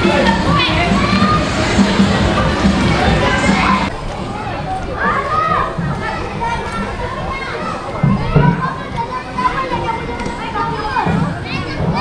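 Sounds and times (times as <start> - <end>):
children playing and calling out: 0.0 - 12.0.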